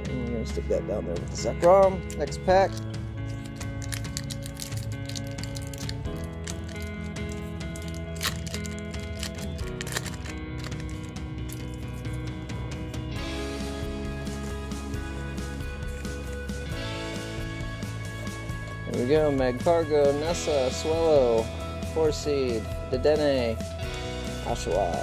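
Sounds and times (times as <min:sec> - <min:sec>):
background music: 0:00.0 - 0:25.0
foil wrapper crackling: 0:02.7 - 0:12.3.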